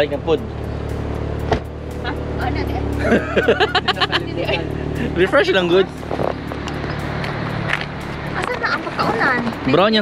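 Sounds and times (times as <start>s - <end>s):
people talking and laughing: 2.1s - 6.0s.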